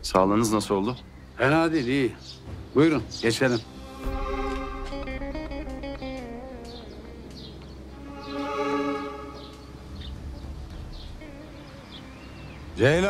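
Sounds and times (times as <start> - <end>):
plucked string instrument music: 3.7 - 12.3.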